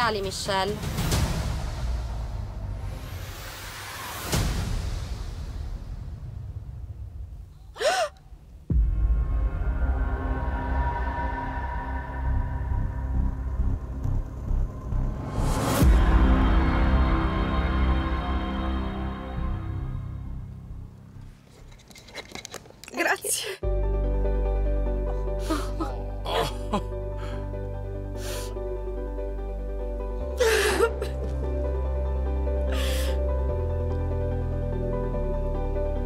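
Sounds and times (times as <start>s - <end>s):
low rumbling music: 0.0s - 21.4s, 23.6s - 36.0s
deep music hit: 0.8s - 7.5s, 8.6s - 20.9s
woman gasping: 7.7s - 8.3s, 25.4s - 27.4s, 30.4s - 31.2s.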